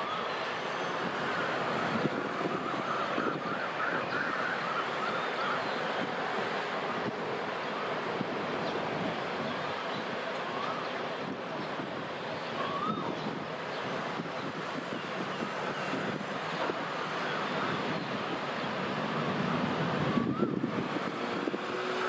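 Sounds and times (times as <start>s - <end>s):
rail yard rumble and hiss: 0.0s - 22.0s.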